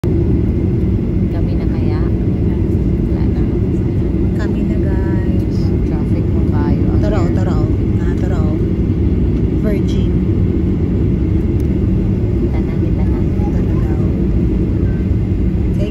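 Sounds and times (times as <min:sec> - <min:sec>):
jet engine cabin rumble: 0:00.0 - 0:15.9
faint voices: 0:12.4 - 0:15.1.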